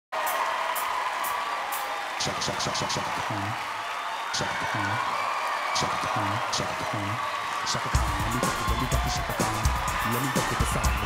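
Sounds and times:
studio audience cheering: 0:00.1 - 0:11.0.

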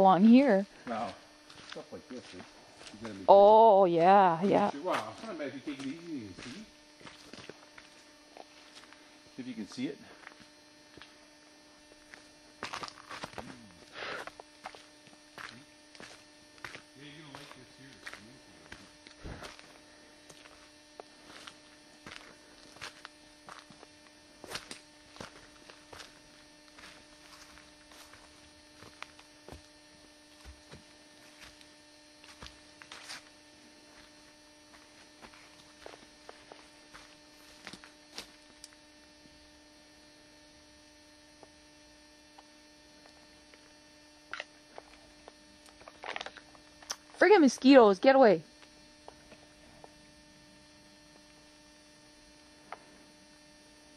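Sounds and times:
camcorder recording hum: 0:00.0 - 0:53.9
footsteps on a trail: 0:00.3 - 0:09.3, 0:10.1 - 0:11.3, 0:12.0 - 0:39.3.

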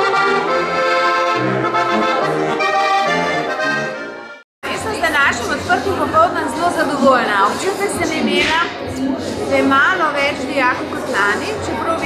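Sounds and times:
button accordion music: 0:00.0 - 0:04.4
voices chattering in a hall: 0:04.6 - 0:12.0.

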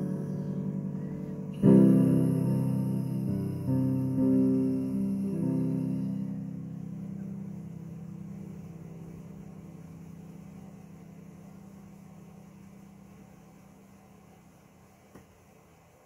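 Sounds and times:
instrumental chord ringing out: 0:00.0 - 0:13.8.

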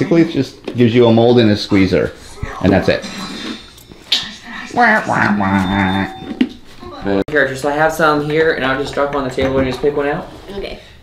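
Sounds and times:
man vocalising drawn-out: 0:04.7 - 0:06.2.

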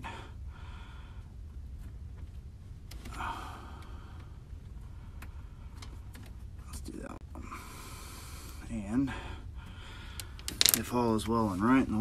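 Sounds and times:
man breathing heavily: 0:00.0 - 0:01.8, 0:03.0 - 0:06.1, 0:07.3 - 0:10.6
low steady rumble: 0:00.0 - 0:12.0.

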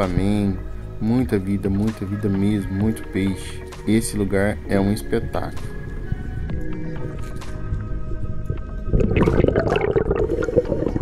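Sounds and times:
water rushing and bubbling underwater: 0:08.2 - 0:11.0.

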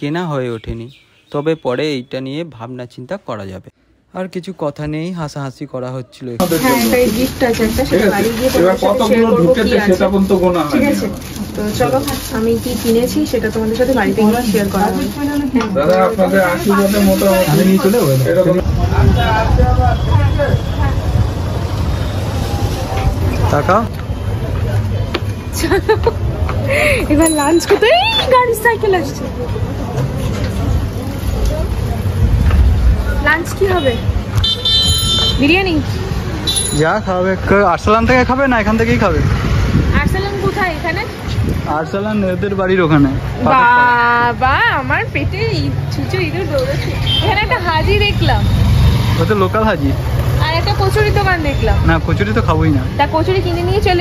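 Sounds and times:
people chattering: 0:04.2 - 0:54.0
low rumble of passing vehicles: 0:06.4 - 0:27.3, 0:28.4 - 0:54.0.

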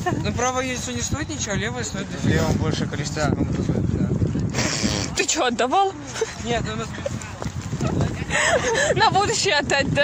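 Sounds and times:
teenagers talking: 0:00.0 - 0:10.0.

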